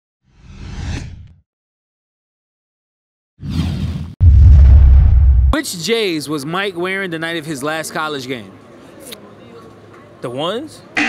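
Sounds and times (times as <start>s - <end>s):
whoosh with deep low rumble: 3.8s - 5.6s.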